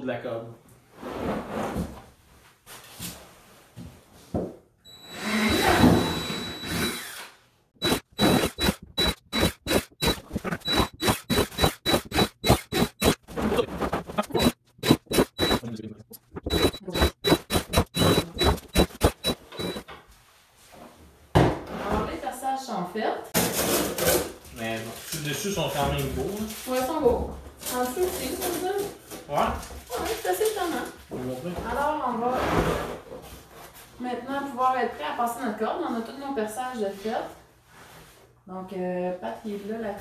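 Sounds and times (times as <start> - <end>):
cordless drill drilling plastic: 5.0 - 15.7, 16.3 - 19.8.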